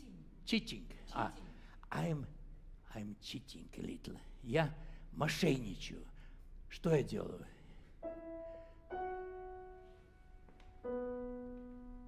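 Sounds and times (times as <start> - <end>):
grand piano notes: 7.0 - 12.0.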